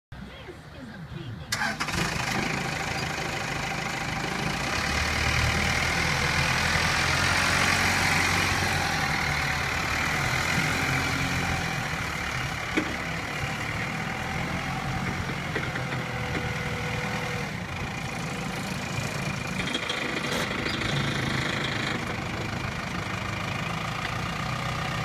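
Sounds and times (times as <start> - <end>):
diesel engine cranking and running: 1.5 - 25.0.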